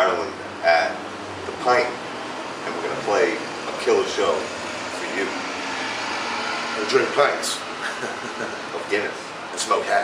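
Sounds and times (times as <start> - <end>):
man speaking: 2.7 - 5.4, 8.7 - 10.0.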